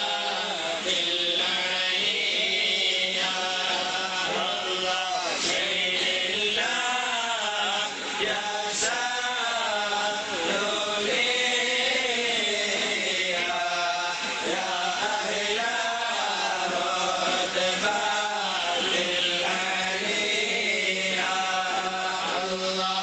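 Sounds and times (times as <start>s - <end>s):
men chanting: 0.0s - 23.0s.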